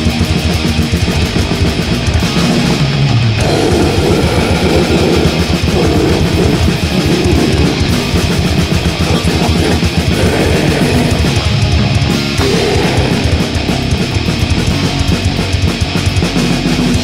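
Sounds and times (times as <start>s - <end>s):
bass guitar: 0.0s - 17.0s
distorted electric guitar: 0.0s - 17.0s
rapid drumming: 0.0s - 17.0s.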